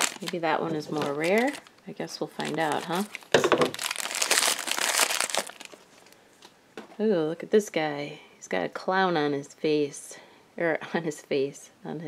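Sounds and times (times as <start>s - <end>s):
foil bag crinkling: 0.0s - 6.2s.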